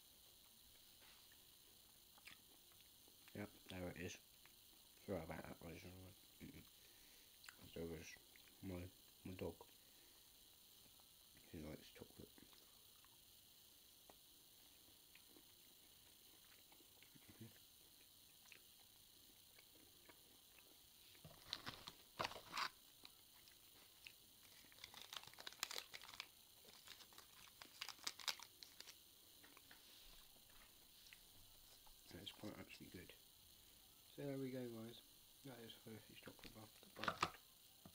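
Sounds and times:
plastic wrapper crinkling: 21.2s - 22.8s, 24.4s - 29.0s.

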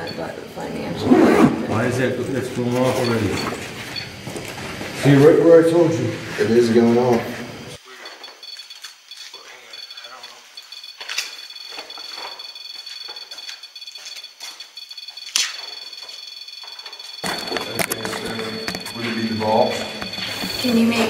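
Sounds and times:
high-pitched electronic alarm tones: 0.0s - 5.9s, 7.8s - 21.0s
faint voices: 17.2s - 21.0s.

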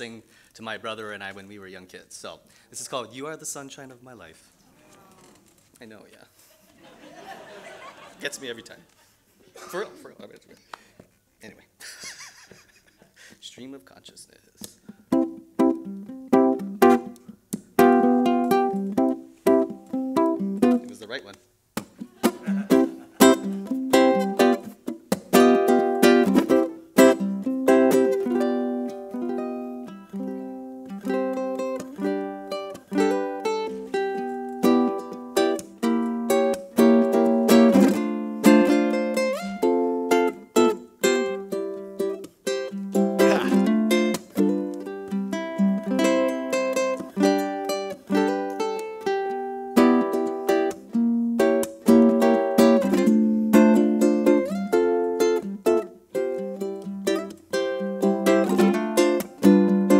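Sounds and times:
ukulele playing: 14.6s - 21.1s, 21.8s - 59.9s.

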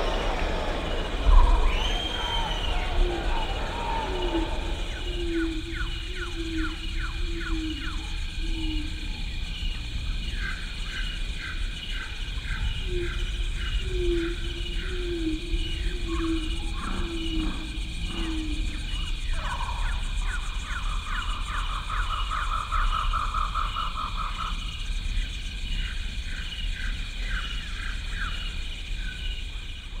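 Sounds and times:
animal calls: 0.0s - 8.9s
insects chirping: 0.0s - 30.0s.

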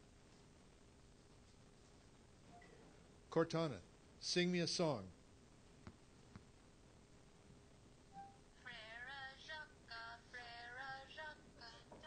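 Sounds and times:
synthetic voice singing: 8.6s - 12.0s.

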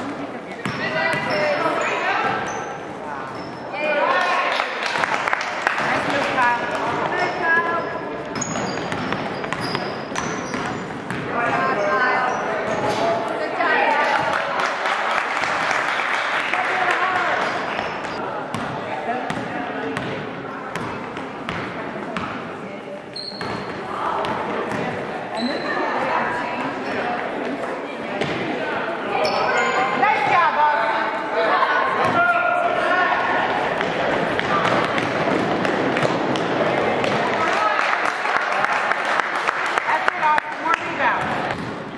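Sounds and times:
sneaker squeaks: 0.6s - 3.8s, 6.9s - 13.2s, 17.3s - 18.2s, 23.1s - 23.9s, 24.7s - 26.0s, 29.2s - 30.5s.

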